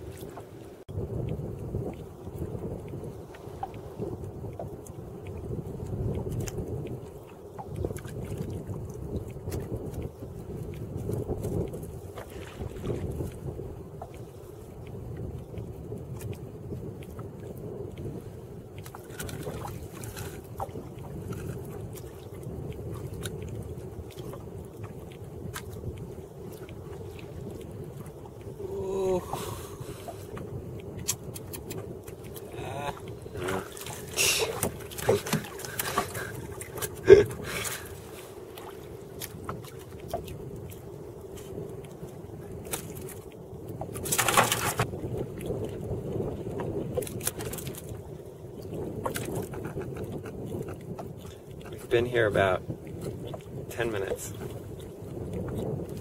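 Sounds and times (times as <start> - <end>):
wind and water wash: 0.0 - 56.0
short voice: 28.6 - 29.6, 32.5 - 35.2
knocks and clicks on wooden canoe: 33.4 - 37.0, 43.8 - 44.9, 49.0 - 51.8.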